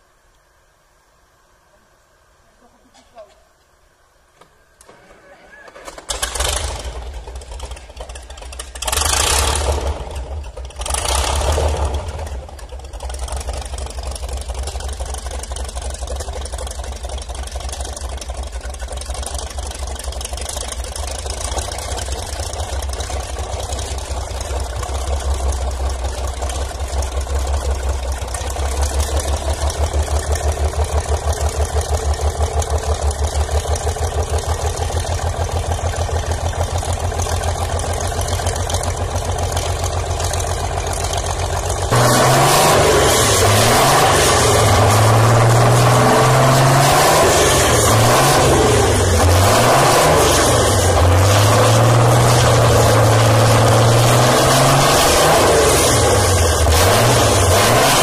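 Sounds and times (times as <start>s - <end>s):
car engine starting and idling: 4.4s - 58.0s.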